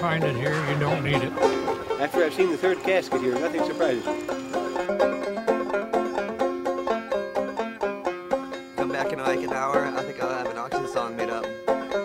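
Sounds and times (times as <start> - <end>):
plucked banjo music: 0.0 - 12.0.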